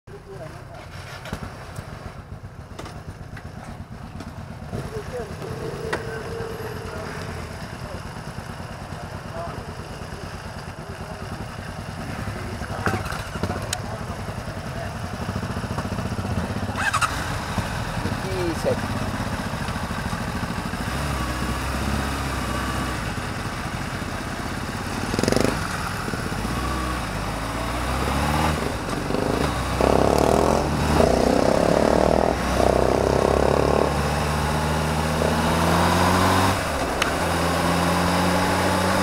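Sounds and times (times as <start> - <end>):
motorcycle engines idling: 0.1 - 39.0.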